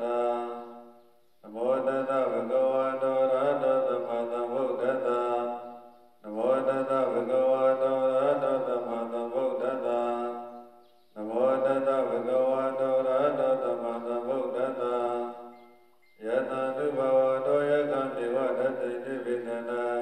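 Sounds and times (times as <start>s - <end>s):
monk chanting into microphone: 0.0s - 20.0s.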